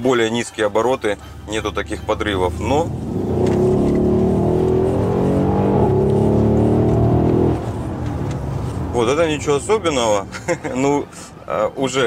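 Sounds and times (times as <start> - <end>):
car engine accelerating: 1.4 - 10.3.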